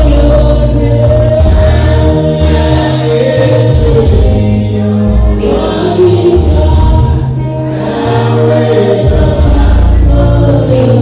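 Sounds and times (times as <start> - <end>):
deep bass line: 0.0 - 11.0
electronic keyboard: 0.0 - 11.0
voices singing gospel: 0.0 - 11.0.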